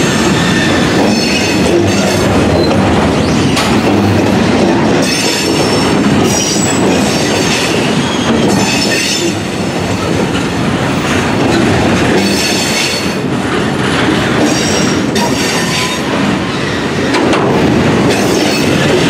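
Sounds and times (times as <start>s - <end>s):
train wheels rumbling on rail: 0.0s - 19.0s.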